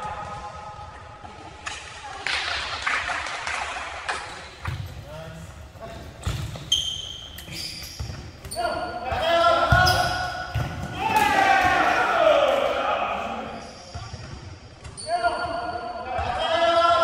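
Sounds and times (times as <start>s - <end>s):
sneaker squeaks: 4.5s - 11.4s, 13.5s - 16.4s
players calling out: 4.6s - 13.8s
ball thudding on gym floor: 8.0s - 11.8s.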